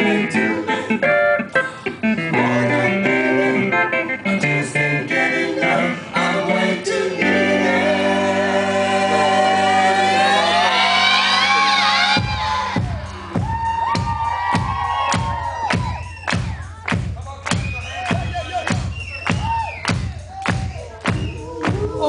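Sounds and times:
voices singing held chord: 0.0s - 1.0s, 2.3s - 12.7s
crowd shouting and cheering: 9.1s - 22.0s.

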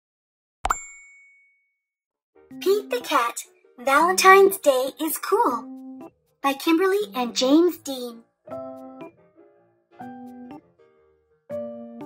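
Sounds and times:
bright bell ding: 0.7s - 1.7s.

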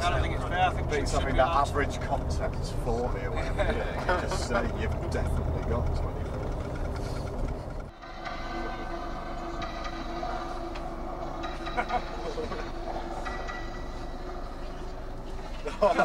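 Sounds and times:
droning hum of held tones: 0.0s - 16.0s
road and engine rumble: 0.0s - 16.0s.

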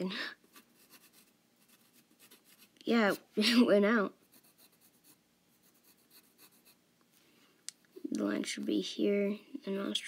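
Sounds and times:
pencil scratching on paper: 0.5s - 2.8s, 4.1s - 6.8s.

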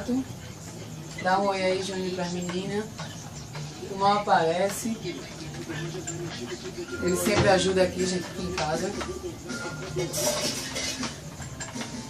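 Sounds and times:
dishes and cutlery clattering: 4.5s - 12.0s.

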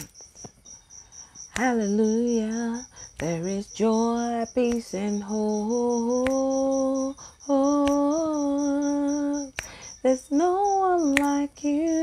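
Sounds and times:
quick breath: 9.6s - 10.0s.

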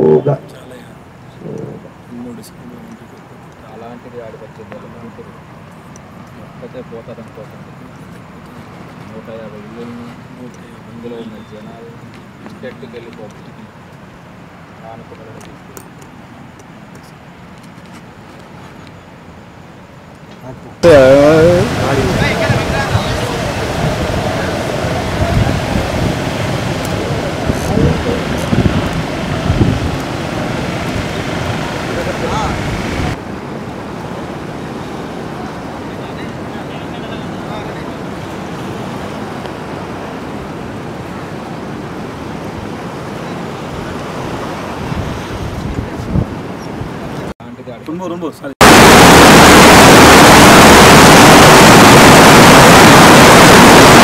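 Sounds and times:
raised wavering voices: 0.0s - 2.2s, 20.8s - 33.2s
sea surf: 20.8s - 47.3s, 48.6s - 54.0s
wind buffeting microphone: 20.9s - 35.9s, 37.8s - 47.3s.

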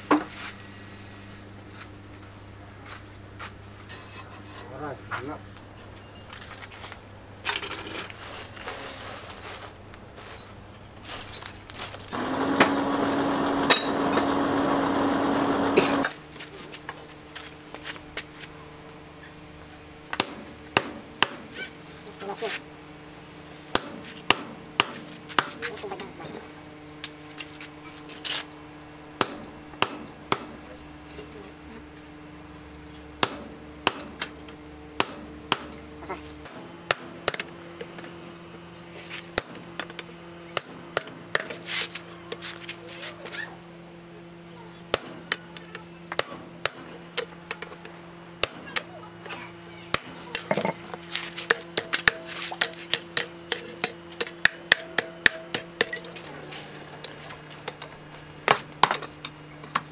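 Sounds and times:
hammer striking chisel on metal: 23.7s - 25.6s, 29.2s - 30.6s, 35.0s - 35.8s, 51.4s - 56.1s.

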